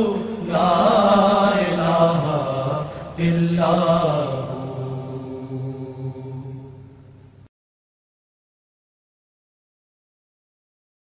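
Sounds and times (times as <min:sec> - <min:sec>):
devotional chanting: 0:00.0 - 0:07.5
steady low drone: 0:00.0 - 0:07.5.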